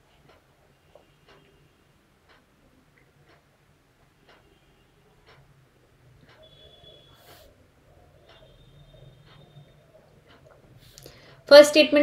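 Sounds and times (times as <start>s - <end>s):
faint regular tick: 5.2s - 5.5s.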